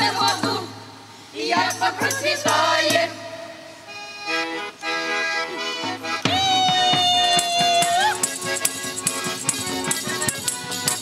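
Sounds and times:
accordion playing chords and tune: 1.5s - 11.0s
light hand percussion ticking: 5.8s - 11.0s.

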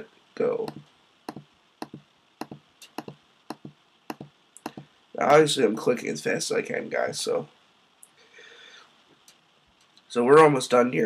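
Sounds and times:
computer mouse clicks: 0.6s - 4.9s.

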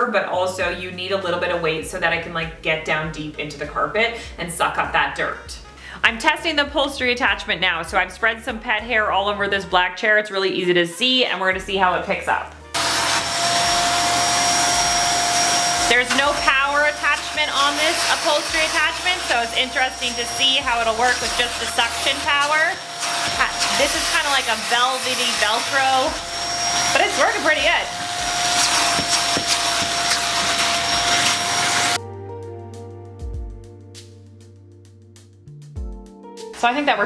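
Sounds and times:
vacuum cleaner running: 12.8s - 32.0s.

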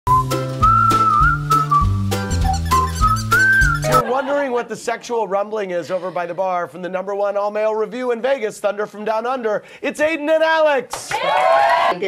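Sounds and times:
whistled tune: 0.1s - 4.0s.

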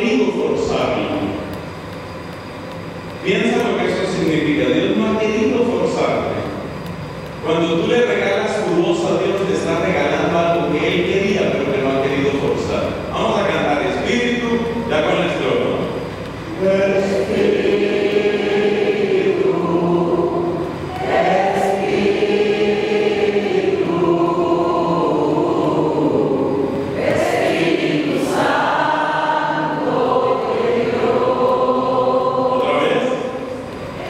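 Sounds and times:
voices singing into microphones: 7.4s - 34.0s
many voices singing together: 16.5s - 34.0s.

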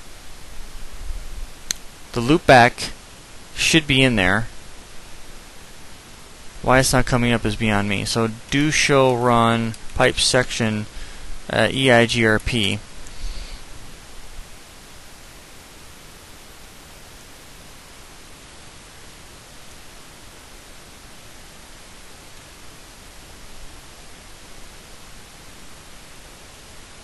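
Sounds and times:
microphone hiss: 0.0s - 27.0s.

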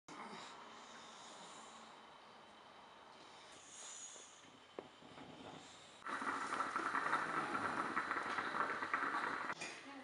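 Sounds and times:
moka pot hissing: 6.0s - 9.6s.

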